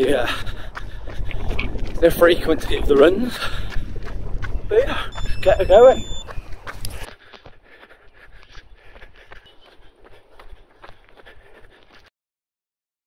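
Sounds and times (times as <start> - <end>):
wind buffeting microphone: 0.0 - 7.1
running footsteps: 0.0 - 12.1.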